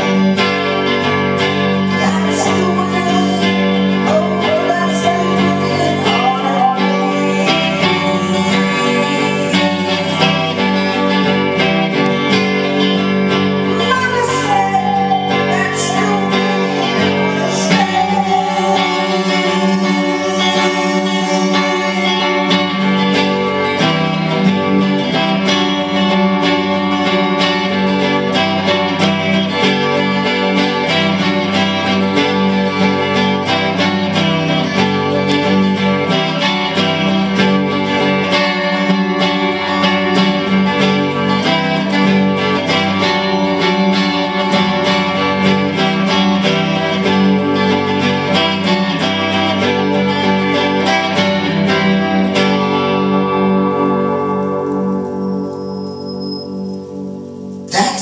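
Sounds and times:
electric guitar strummed and picked: 0:00.0 - 0:58.0.

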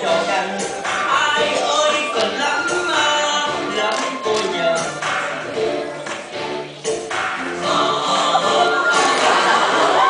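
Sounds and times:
audience noise: 0:00.0 - 0:10.0
voices singing over backing music: 0:00.0 - 0:10.0.

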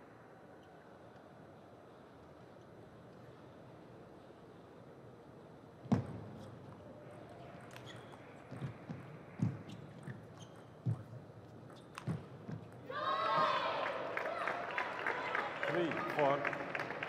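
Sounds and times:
people shouting and cheering: 0:12.9 - 0:16.0.

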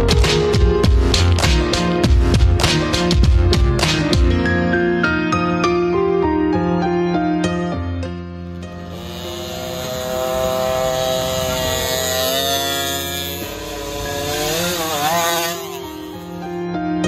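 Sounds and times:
background music: 0:00.0 - 0:17.0
two-stroke engine revving: 0:08.8 - 0:16.6.

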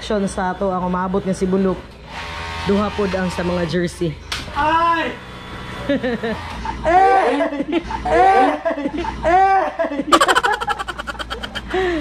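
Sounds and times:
man laughing: 0:07.3 - 0:12.0.

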